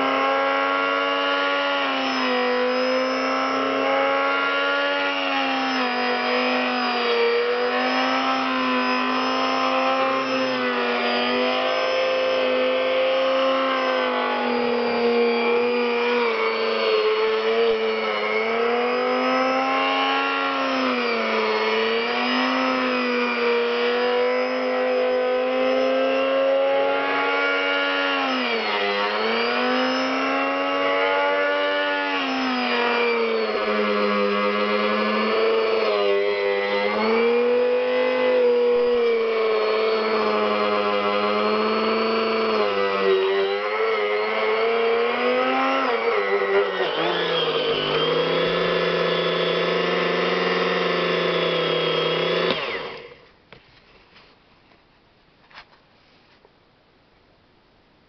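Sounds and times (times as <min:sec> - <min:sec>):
electric grinder motor whine: 0:00.0 - 0:53.3.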